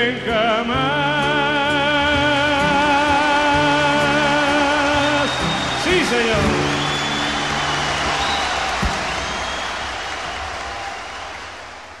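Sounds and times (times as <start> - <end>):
audience applause: 5.1 - 12.0.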